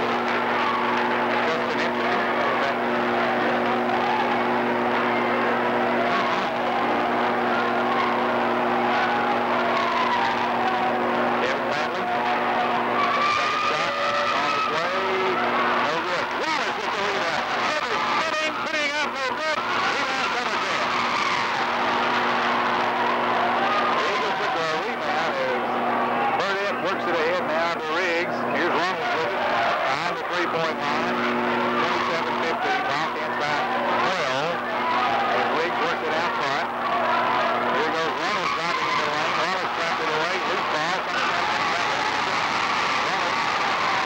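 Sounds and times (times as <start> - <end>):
crowd talking and shouting: 0.0 - 44.0.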